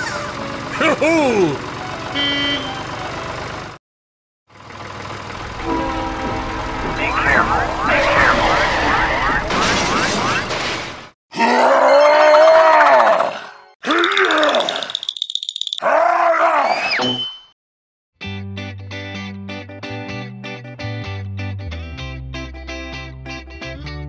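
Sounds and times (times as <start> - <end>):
noisy rumble with steady tones: 5.4 - 10.7.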